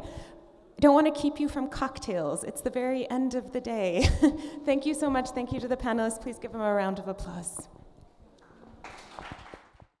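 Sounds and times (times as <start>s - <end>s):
faint audience applause: 8.4s - 10.0s.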